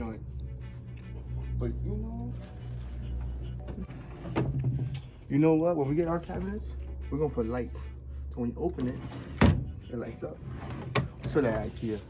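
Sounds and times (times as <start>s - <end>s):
background music: 0.0s - 11.3s.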